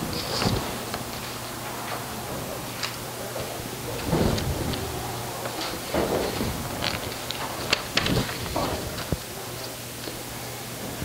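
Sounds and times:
paper shuffling: 0:00.0 - 0:02.0, 0:02.7 - 0:10.2
electrical hum and hiss: 0:00.0 - 0:11.0.

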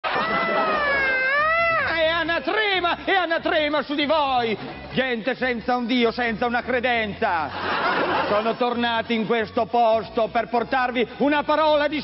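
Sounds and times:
man's high wailing cry: 0:00.1 - 0:02.1
man shouting preaching: 0:00.2 - 0:04.1.

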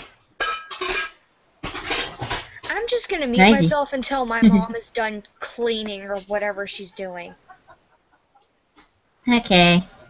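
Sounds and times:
dishes clinking: 0:00.0 - 0:02.8.

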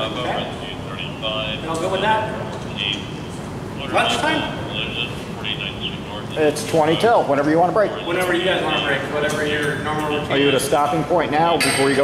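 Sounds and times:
man speaking indistinctly: 0:00.0 - 0:12.0
steady background noise: 0:00.0 - 0:12.0.

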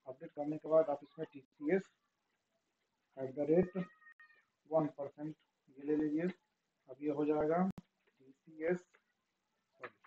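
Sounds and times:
man talking: 0:00.0 - 0:01.9, 0:03.2 - 0:04.0, 0:04.7 - 0:08.9.

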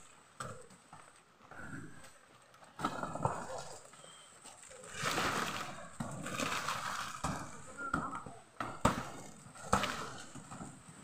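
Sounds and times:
palm fronds rustling and crackling: 0:00.0 - 0:11.0.

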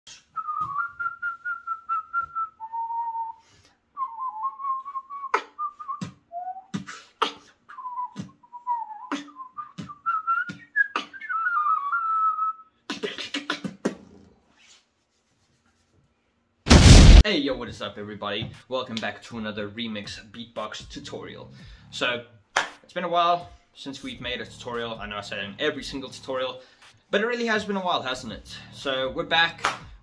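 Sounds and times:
whistled melody: 0:00.1 - 0:06.7, 0:07.7 - 0:12.8
hissing beatbox percussion: 0:12.9 - 0:14.0.

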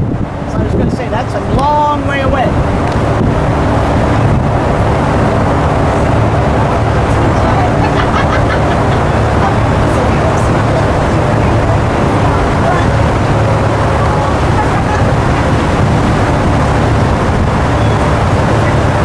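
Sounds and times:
boat engine rumbling: 0:00.0 - 0:19.0
wind on microphone: 0:00.0 - 0:19.0.

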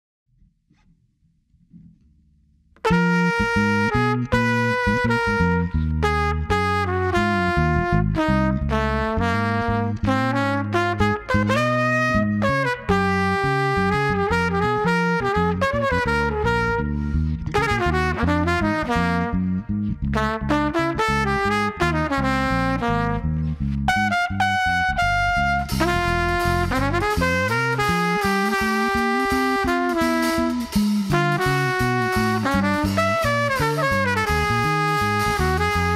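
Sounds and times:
jazz combo playing: 0:02.8 - 0:35.9
trumpet melody: 0:02.8 - 0:35.9.

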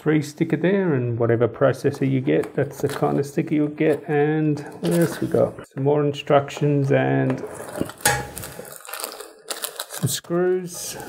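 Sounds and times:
plastic bags crinkling: 0:07.6 - 0:11.0.

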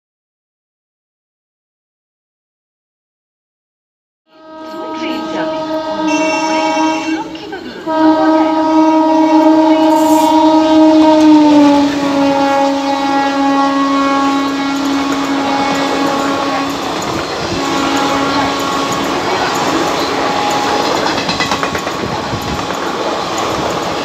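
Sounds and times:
locomotive horn blasts: 0:04.3 - 0:24.0
train wheels clattering over rail joints: 0:14.6 - 0:24.0.

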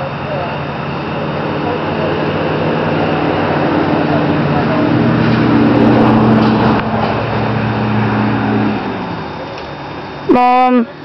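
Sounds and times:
motor engine humming: 0:00.0 - 0:11.0.

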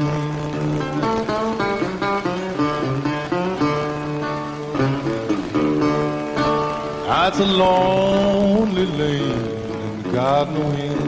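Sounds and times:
acoustic guitar blues phrase: 0:00.0 - 0:11.0
person singing: 0:07.0 - 0:11.0.

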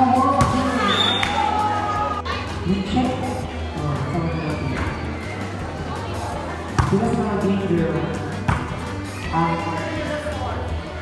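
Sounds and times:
background music: 0:00.0 - 0:11.0
crowd voices: 0:00.0 - 0:11.0.

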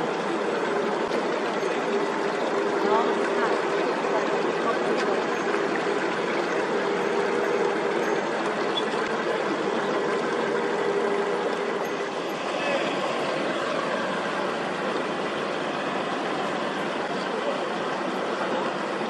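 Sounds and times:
diesel boat engine running: 0:00.0 - 0:19.0
water churning from propeller: 0:00.0 - 0:19.0.

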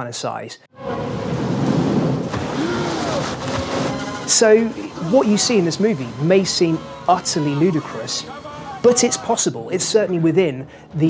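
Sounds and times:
boat engine running: 0:00.8 - 0:09.2
rushing churning water: 0:01.0 - 0:05.8.

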